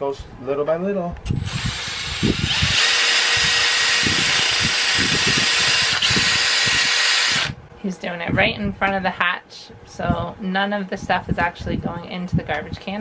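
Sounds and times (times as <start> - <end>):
cordless drill sanding plastic: 1.3 - 7.6.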